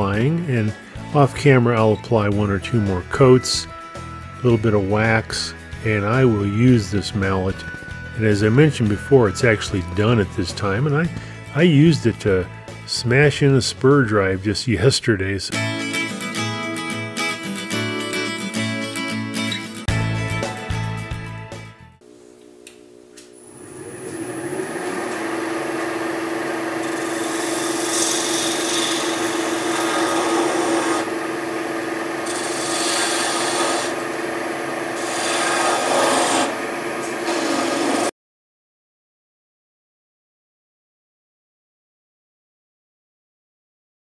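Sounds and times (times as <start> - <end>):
guitar music: 15.5 - 22.0
wood lathe humming: 23.4 - 38.1.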